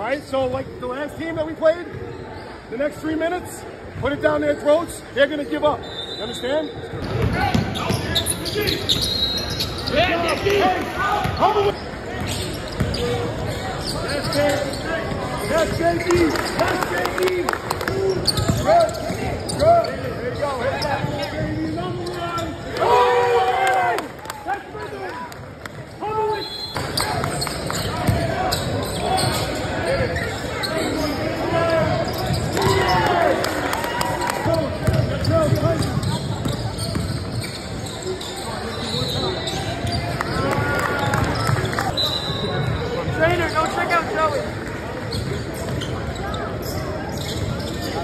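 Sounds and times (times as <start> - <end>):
voices and shouts: 3.4 - 36.2
basketball bouncing on floor: 7.0 - 7.7, 34.8 - 37.2.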